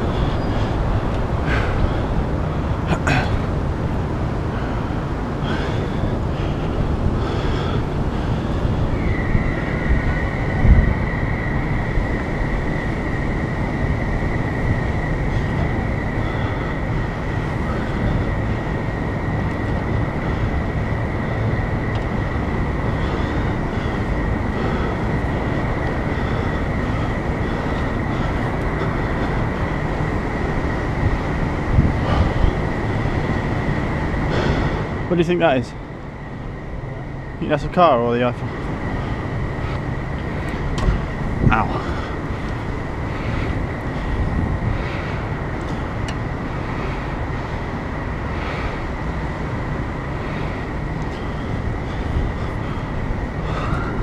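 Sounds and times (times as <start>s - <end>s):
rumbling background: 0.0s - 54.0s.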